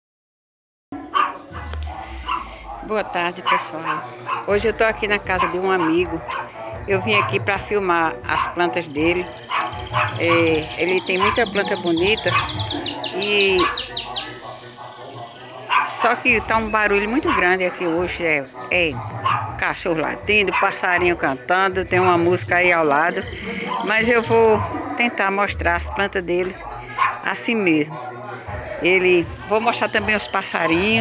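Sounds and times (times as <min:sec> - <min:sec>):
dog barking: 0:01.0 - 0:19.7, 0:20.4 - 0:21.0, 0:23.3 - 0:25.2, 0:25.8 - 0:31.0
background music: 0:01.0 - 0:31.0
dog barking sharply: 0:01.1 - 0:02.8, 0:03.4 - 0:04.5, 0:05.4 - 0:06.5, 0:09.4 - 0:10.5, 0:13.6 - 0:16.0, 0:18.9 - 0:19.6, 0:26.6 - 0:27.3.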